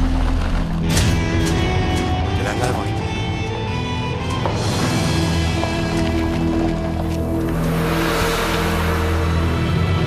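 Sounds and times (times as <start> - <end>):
dramatic music with low tones: 0.0 - 10.0.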